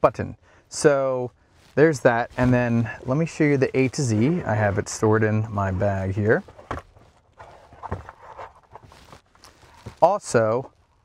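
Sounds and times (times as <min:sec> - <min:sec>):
rustling: 0:01.4 - 0:11.0.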